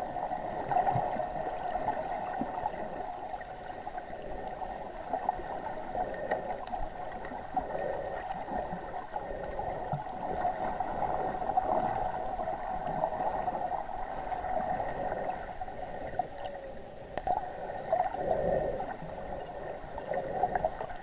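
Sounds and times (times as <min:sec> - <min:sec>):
muffled underwater hum: 0:00.0 - 0:21.0
water crackling and gurgling: 0:00.0 - 0:21.0.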